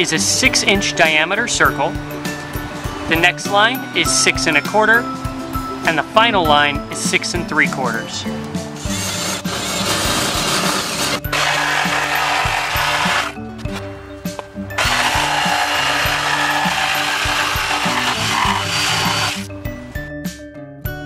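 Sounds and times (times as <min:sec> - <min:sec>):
electric drill boring wood: 0:08.8 - 0:13.4, 0:14.8 - 0:19.5
jigsaw cutting wood: 0:08.9 - 0:13.4, 0:14.8 - 0:19.5.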